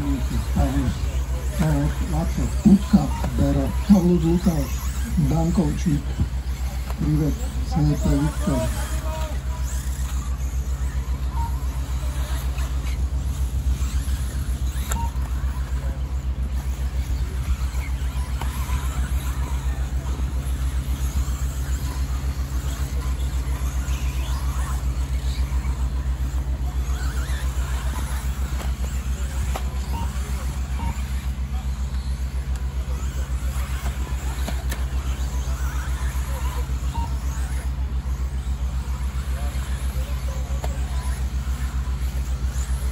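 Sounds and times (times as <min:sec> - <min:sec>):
faint high whines and ticks: 0:00.0 - 0:42.9
pulsing mechanical rumble: 0:00.0 - 0:42.9.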